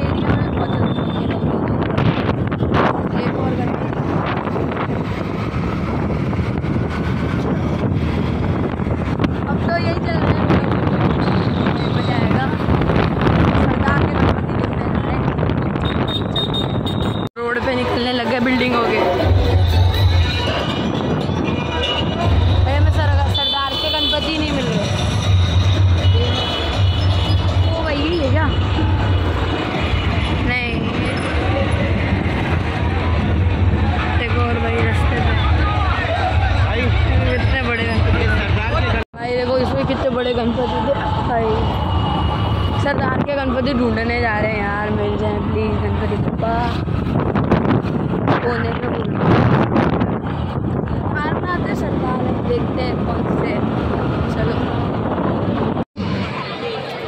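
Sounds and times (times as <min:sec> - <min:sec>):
wind buffeting microphone: 0:00.0 - 0:23.3, 0:24.4 - 0:56.3
road traffic: 0:00.0 - 0:57.0.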